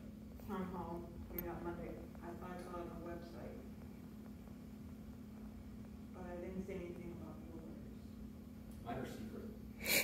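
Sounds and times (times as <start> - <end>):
breath noise near microphone: 9.8 - 10.0.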